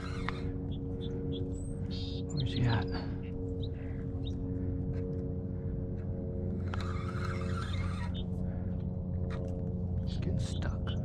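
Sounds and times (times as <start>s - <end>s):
fishing reel rasping: 0.0s - 0.5s, 6.6s - 8.3s
steady low hum: 0.0s - 11.0s.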